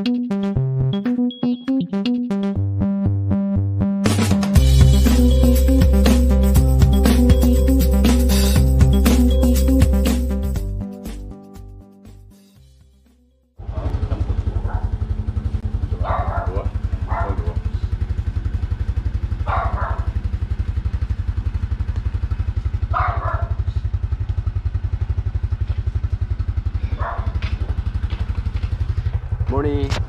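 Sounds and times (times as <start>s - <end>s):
engine idling: 13.6s - 30.0s.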